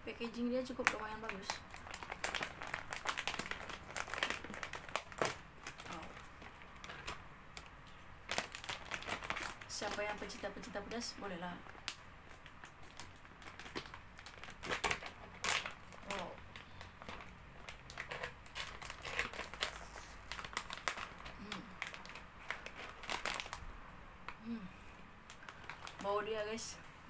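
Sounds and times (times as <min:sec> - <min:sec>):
foil chip bag crinkling: 0:00.2 - 0:23.7, 0:25.3 - 0:26.6.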